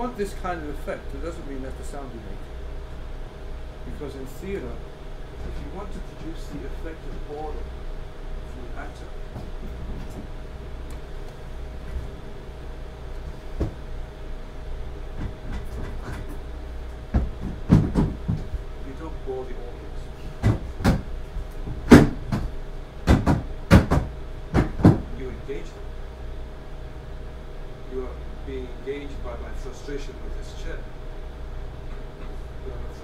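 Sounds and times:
chair knocking on floor: 0:13.5 - 0:13.8, 0:15.2 - 0:16.4, 0:17.1 - 0:18.6, 0:20.4 - 0:25.1.

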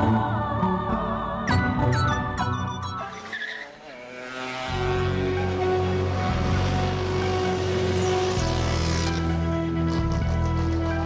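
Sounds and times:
soft music: 0:00.0 - 0:03.8, 0:04.6 - 0:11.0
film soundtrack music with bell notes: 0:01.5 - 0:03.4
road noise: 0:02.9 - 0:11.0
vehicle engine: 0:03.0 - 0:11.0.

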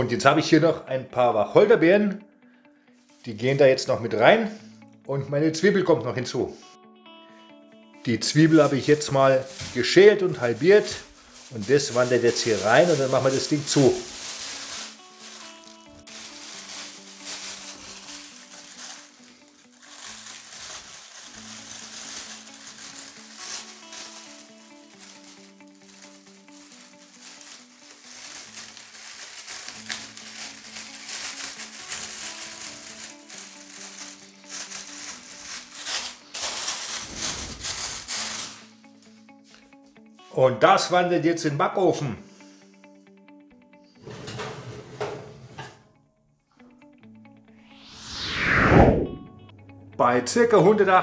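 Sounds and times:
quiet background music: 0:00.0 - 0:51.0
plastic bag crinkling: 0:08.2 - 0:39.6.

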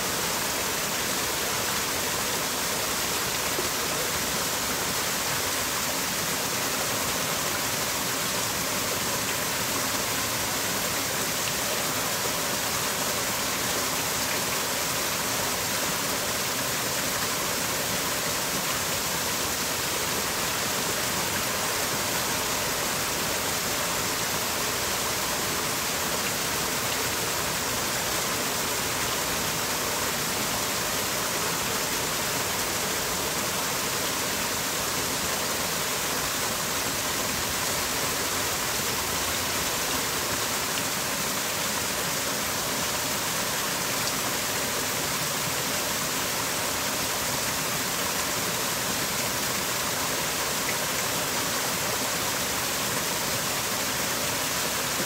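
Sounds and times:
waterfall rushing: 0:00.0 - 0:55.0.

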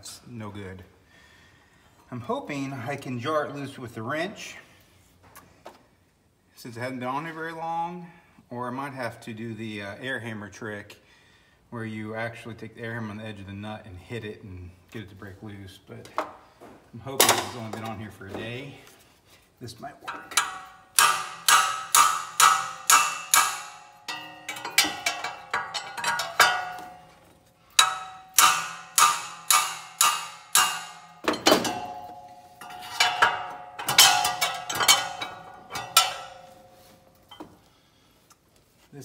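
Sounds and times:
metal striking a wrench: 0:20.1 - 0:37.6.

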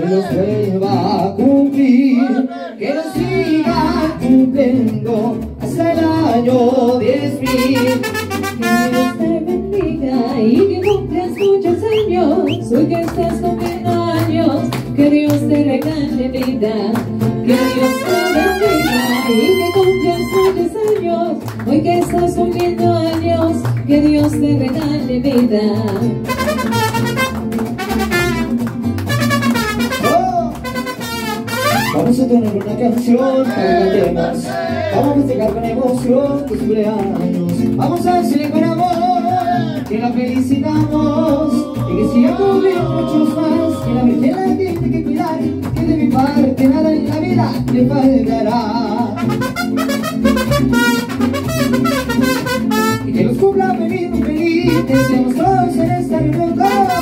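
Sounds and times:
mariachi band playing: 0:00.0 - 0:57.0
bright brass passage: 0:07.5 - 0:09.3, 0:17.5 - 0:20.6, 0:26.3 - 0:32.1, 0:49.2 - 0:53.2.

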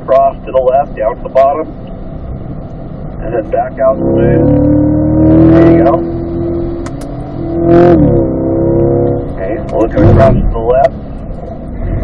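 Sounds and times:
car engine pulling from inside cabin: 0:03.4 - 0:12.0.

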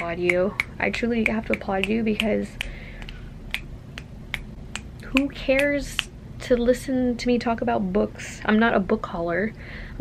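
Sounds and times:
finger snaps: 0:00.0 - 0:06.1.

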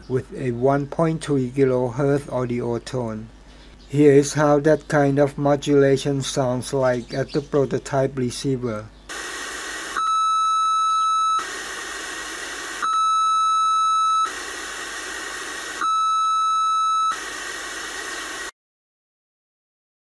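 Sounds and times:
radio test tone: 0:09.1 - 0:18.5
receiver hiss: 0:09.1 - 0:18.5.

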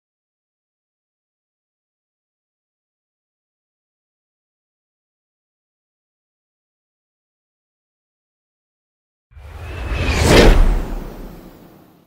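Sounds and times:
whoosh with deep rumble: 0:09.4 - 0:11.9.

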